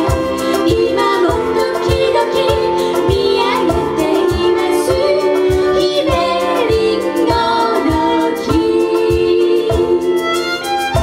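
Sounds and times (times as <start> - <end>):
percussion thumping beat: 0.0 - 11.0
piano: 0.0 - 11.0
violin: 0.0 - 11.0
women singing into microphones: 0.0 - 11.0.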